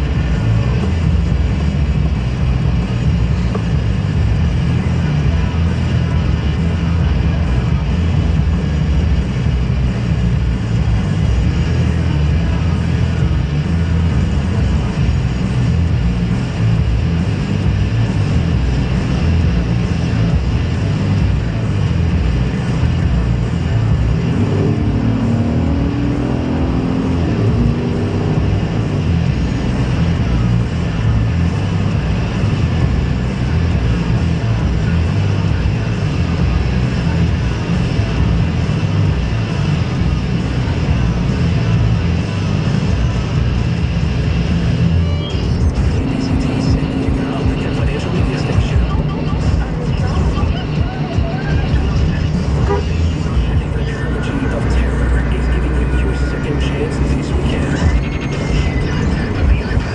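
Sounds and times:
car engine and tyre rumble: 0.0s - 59.9s.

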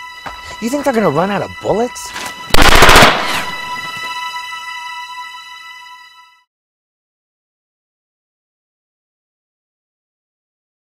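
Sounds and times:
automatic gunfire: 2.5s - 3.8s.

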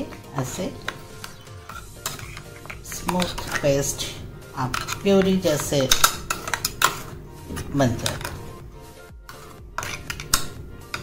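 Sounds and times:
background music: 0.0s - 11.0s
spoon scraping paste in jar: 0.5s - 8.4s, 9.2s - 11.0s.

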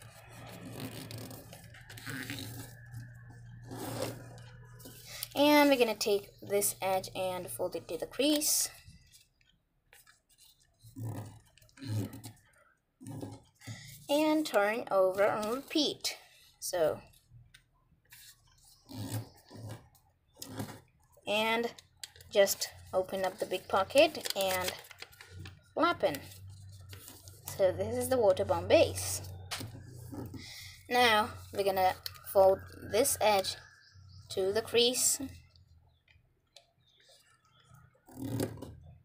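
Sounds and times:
paper rustling as it is folded: 0.0s - 5.3s, 8.2s - 15.7s, 18.1s - 20.8s, 21.8s - 27.5s.

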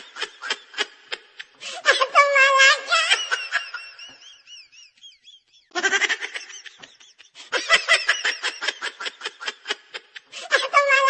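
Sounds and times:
person laughing: 0.0s - 11.0s.

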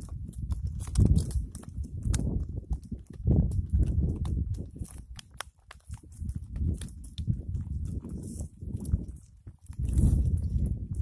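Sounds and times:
twigs being torn: 0.0s - 10.7s
hooves on rock: 0.0s - 11.0s
wind rumble on microphone: 0.0s - 11.0s.

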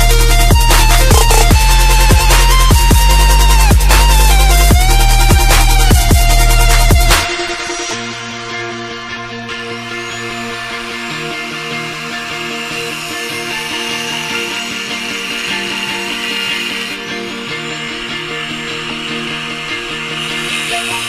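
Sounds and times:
angle grinder cutting metal: 0.0s - 21.0s
background music with chords: 0.0s - 21.0s.

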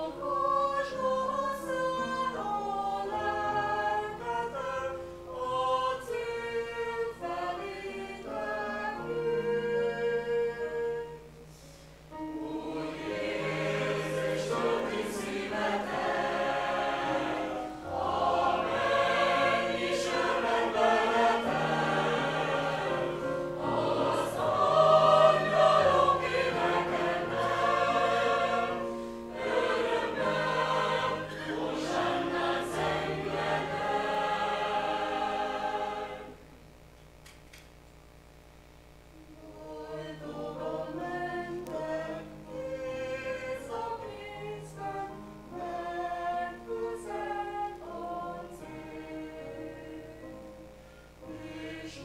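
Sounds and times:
mixed choir singing: 0.0s - 11.3s, 12.1s - 36.4s, 39.4s - 50.6s, 51.2s - 52.0s.

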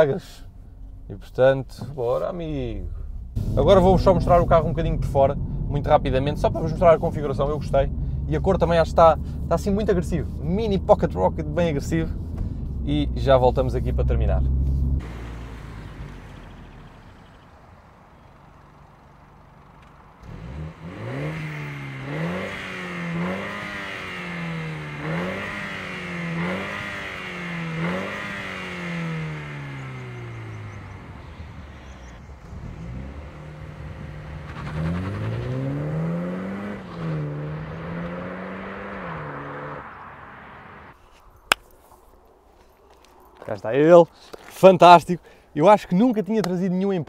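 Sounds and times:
car engine accelerating hard: 2.4s - 41.0s.

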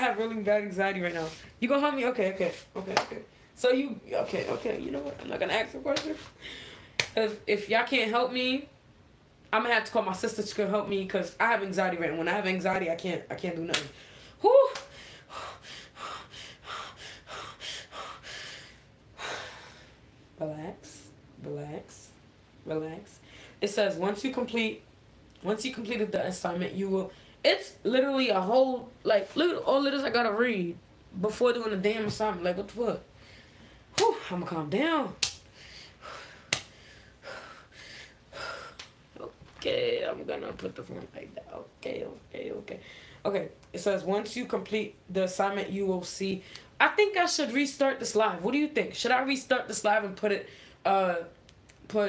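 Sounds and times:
woman breathing quickly: 6.3s - 7.0s, 14.0s - 20.0s, 33.1s - 33.9s, 35.5s - 38.8s.

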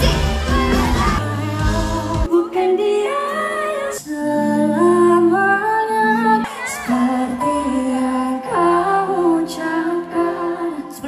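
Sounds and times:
drums and bass: 0.0s - 2.3s
woman singing: 0.0s - 11.0s.

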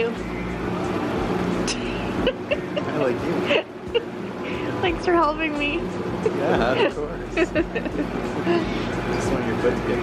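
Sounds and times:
boat motor humming: 0.0s - 10.0s.

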